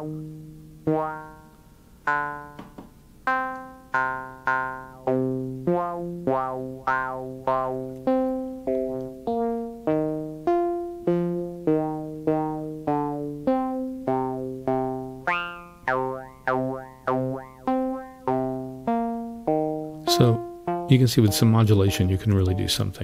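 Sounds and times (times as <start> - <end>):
synthesizer notes with vowel-like formants: 0.0 - 23.0.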